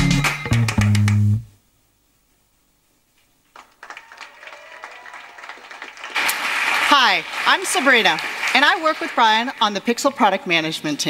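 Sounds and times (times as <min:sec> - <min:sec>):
music ending on bass note: 0:00.0 - 0:01.5
audience applause: 0:03.5 - 0:10.2.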